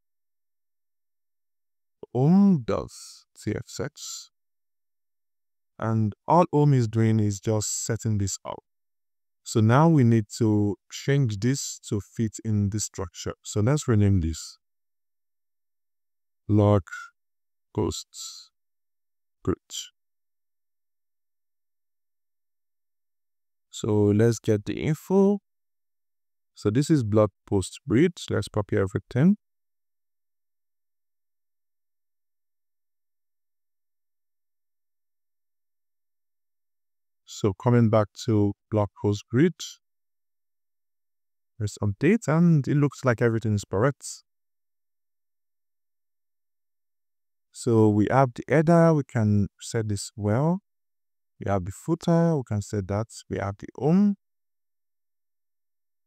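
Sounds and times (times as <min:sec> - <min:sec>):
person speaking: 0:02.0 - 0:04.2, 0:05.8 - 0:08.6, 0:51.4 - 0:54.2
man speaking: 0:02.0 - 0:04.3, 0:05.8 - 0:08.6, 0:09.5 - 0:14.5, 0:16.5 - 0:17.0, 0:17.8 - 0:18.4, 0:19.5 - 0:19.9, 0:23.8 - 0:25.4, 0:26.6 - 0:29.4, 0:37.3 - 0:39.8, 0:41.6 - 0:44.2, 0:47.6 - 0:50.6, 0:51.4 - 0:54.2.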